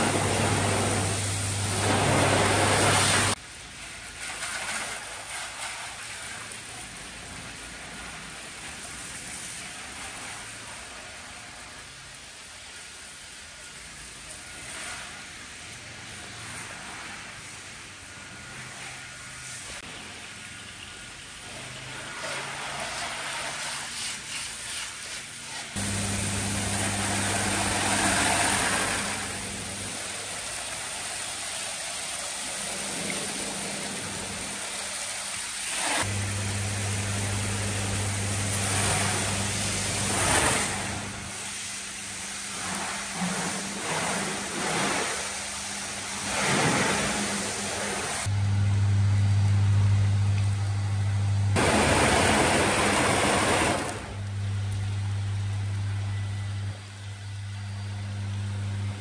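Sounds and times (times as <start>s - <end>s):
pump humming: 0.0s - 3.4s, 25.8s - 35.0s, 36.0s - 42.6s, 48.2s - 59.0s
pressure washer spraying water: 0.0s - 17.6s, 18.3s - 48.3s, 51.6s - 54.3s.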